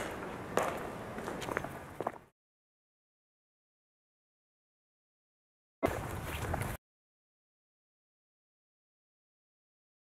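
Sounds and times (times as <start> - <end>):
footsteps: 0.0 - 2.3, 5.8 - 6.8.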